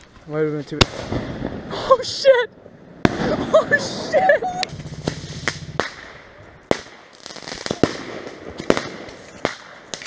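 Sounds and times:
fireworks bangs: 0:00.7 - 0:10.0.

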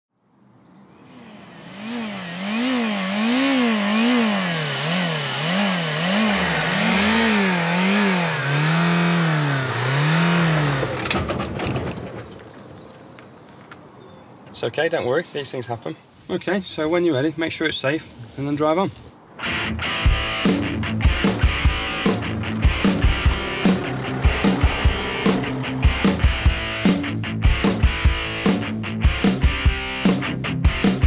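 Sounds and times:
car engine revving: 0:01.0 - 0:11.3, 0:19.4 - 0:30.3
engine knocks: 0:06.1 - 0:12.7, 0:20.1 - 0:28.3.

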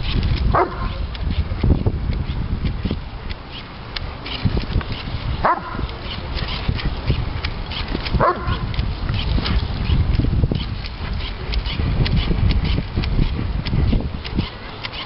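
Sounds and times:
dog barking: 0:00.5 - 0:01.0, 0:05.4 - 0:05.9, 0:08.2 - 0:08.6.

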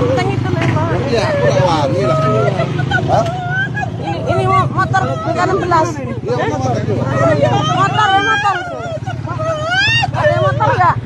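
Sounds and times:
people talking: 0:00.0 - 0:11.0
vehicle engine running: 0:00.0 - 0:11.0.

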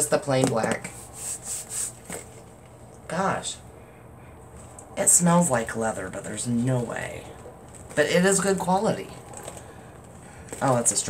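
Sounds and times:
person sniffing: 0:00.9 - 0:02.1.

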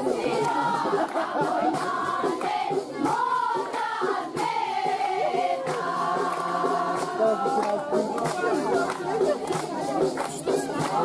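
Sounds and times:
scattered claps: 0:00.0 - 0:11.0
women singing together: 0:00.0 - 0:11.0.

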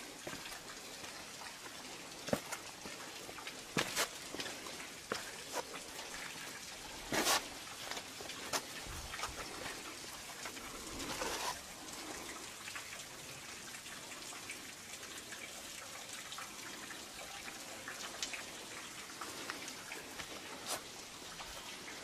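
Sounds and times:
rustle: 0:03.7 - 0:12.3.

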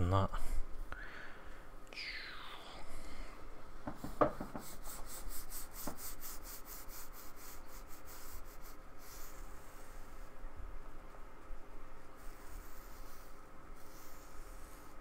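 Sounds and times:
brush tapping: 0:03.8 - 0:07.2
paintbrush scrubbing on board: 0:04.0 - 0:10.3, 0:12.0 - 0:15.0.

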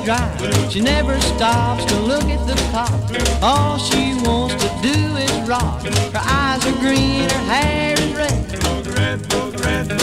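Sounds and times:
brisk drum beat: 0:00.0 - 0:10.0
rockabilly electric guitar: 0:00.0 - 0:10.0.

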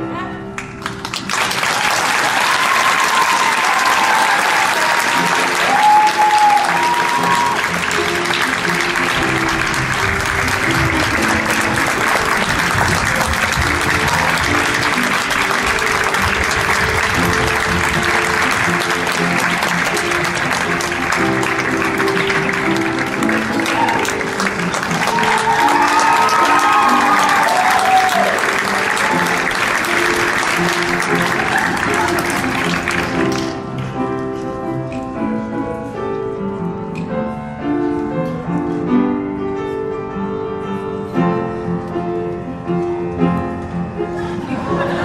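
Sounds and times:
upright piano playing: 0:00.0 - 0:45.0
audience applauding: 0:00.6 - 0:33.6
crowd whooping: 0:01.8 - 0:08.2, 0:13.6 - 0:17.3, 0:20.0 - 0:32.8.

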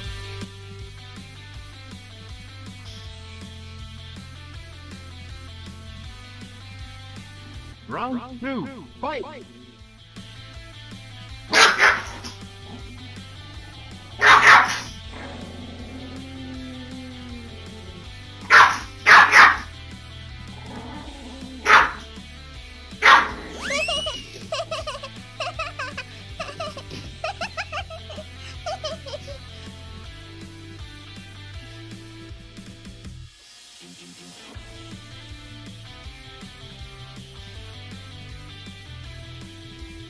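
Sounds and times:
background music: 0:00.0 - 0:40.0
dogs barking: 0:10.4 - 0:30.8
high yips and whines: 0:11.5 - 0:19.7, 0:20.8 - 0:22.1, 0:23.0 - 0:27.0.

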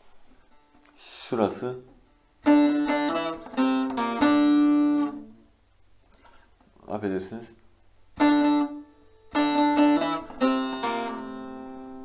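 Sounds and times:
long-neck lute picked with plectrum: 0:02.4 - 0:05.4, 0:08.2 - 0:12.0.

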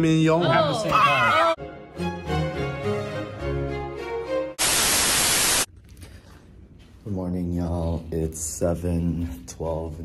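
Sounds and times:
music: 0:00.0 - 0:04.6
loud static hiss: 0:04.6 - 0:05.7.

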